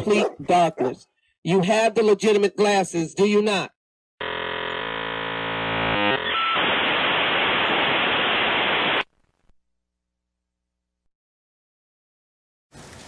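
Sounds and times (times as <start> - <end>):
electronic buzz: 4.2 - 9.0
loud static hiss: 6.2 - 9.1.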